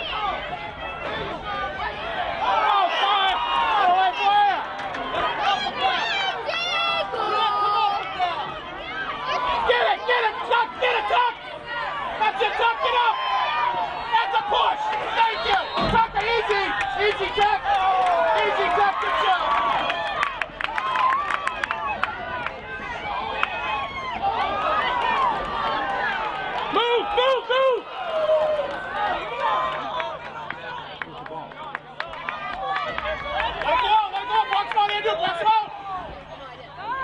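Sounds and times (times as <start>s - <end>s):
people shouting and calling: 0.0s - 31.0s, 32.0s - 37.0s.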